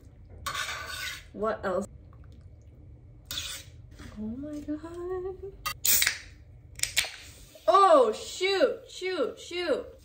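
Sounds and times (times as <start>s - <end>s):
faint drips: 1.9s - 3.2s.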